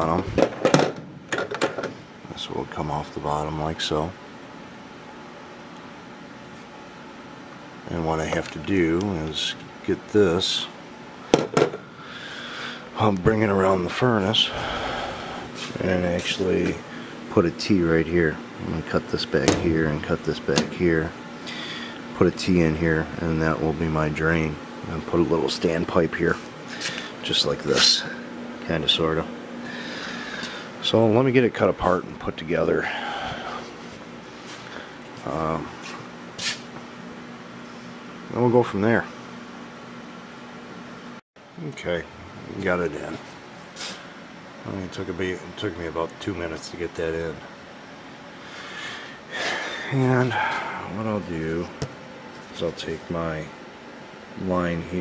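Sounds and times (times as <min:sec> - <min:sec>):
low machine hum: 0:00.0 - 0:55.0.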